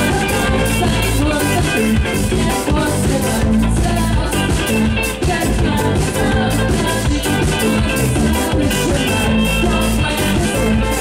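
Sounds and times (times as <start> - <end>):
drum kit: 0.0 - 11.0
guitar: 0.0 - 11.0
live rock band playing: 0.0 - 11.0.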